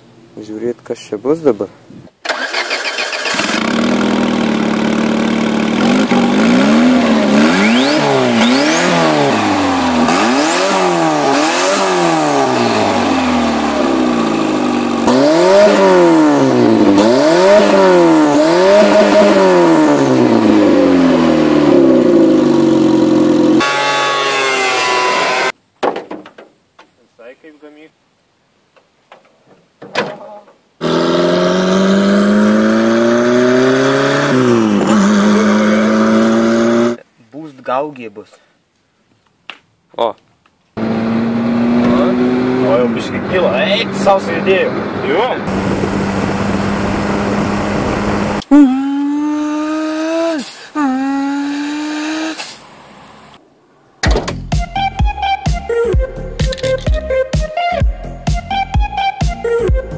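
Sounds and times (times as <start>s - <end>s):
car engine revving: 2.3s - 25.6s, 30.8s - 37.0s, 40.8s - 53.4s
engine accelerating inside car: 3.7s - 14.2s, 40.8s - 52.5s.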